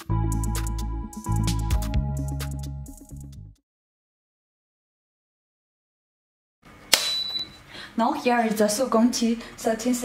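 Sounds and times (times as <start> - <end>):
sharp click: 6.9 - 7.5
high steady ringing tone: 7.0 - 7.7.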